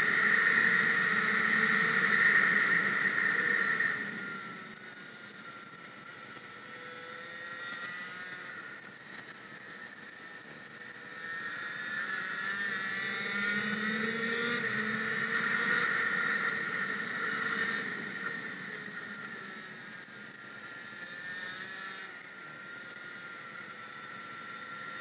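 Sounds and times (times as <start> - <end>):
kart engine revving: 0.0 - 25.0.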